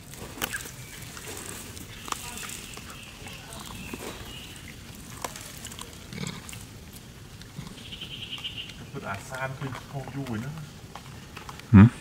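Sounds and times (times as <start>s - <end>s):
outdoor background noise: 0.0s - 12.0s
monkey grunting: 5.8s - 6.6s.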